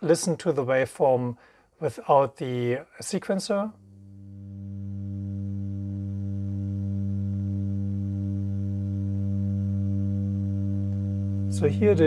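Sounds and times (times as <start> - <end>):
low synthesizer oscillator note: 3.7 - 12.0.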